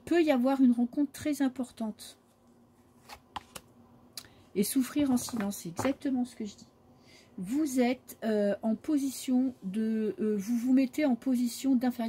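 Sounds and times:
paper cards handled: 2.9 - 3.7.

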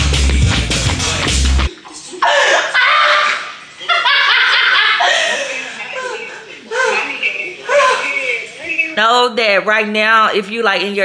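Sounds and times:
laughter: 2.2 - 8.0.

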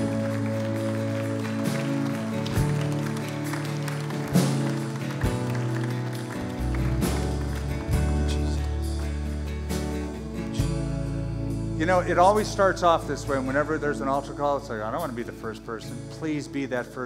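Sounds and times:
worship band playing slow song: 0.0 - 17.0.

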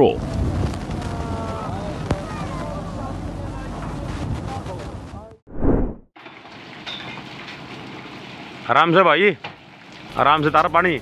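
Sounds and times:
outdoor noise: 0.0 - 11.0.

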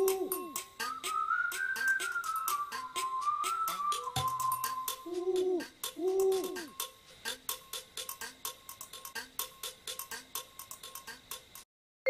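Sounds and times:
owl hoot: 0.0 - 1.1, 3.6 - 6.9.

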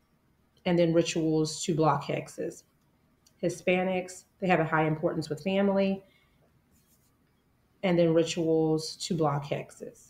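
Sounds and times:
woman lecturing: 0.7 - 2.6, 3.4 - 6.1, 7.8 - 10.0.

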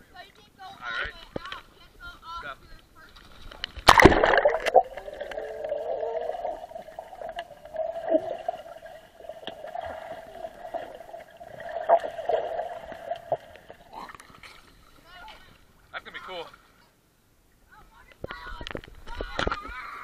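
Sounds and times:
faint underwater clicks: 1.2 - 1.8, 2.7 - 11.8
splash into pool: 3.8 - 6.6.

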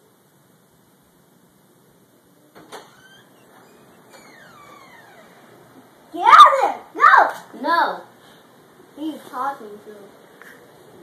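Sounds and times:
door creaking open: 2.5 - 5.7.

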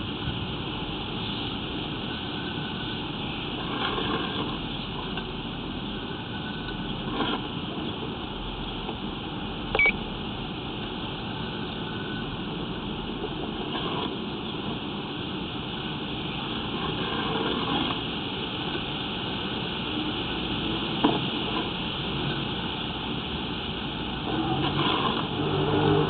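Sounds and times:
mechanical hum and hiss: 0.0 - 26.0
short high beep: 9.8 - 10.0.

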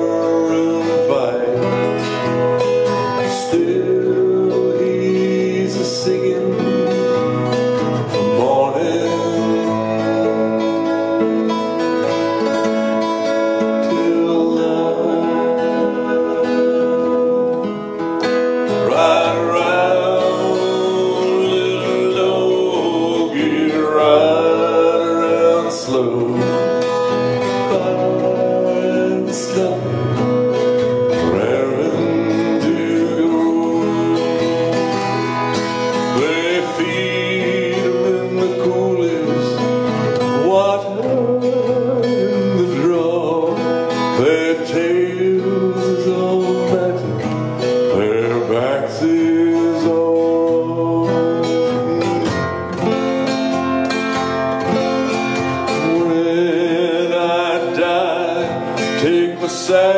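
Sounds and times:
acoustic guitar: 0.0 - 59.9
man singing folk song: 0.0 - 59.9.

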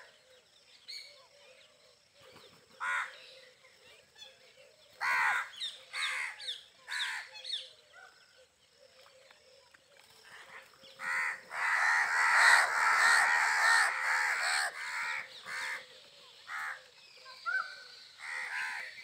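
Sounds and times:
crows cawing: 2.8 - 3.2, 5.0 - 7.3, 11.0 - 15.9, 16.5 - 16.8, 18.2 - 19.0.

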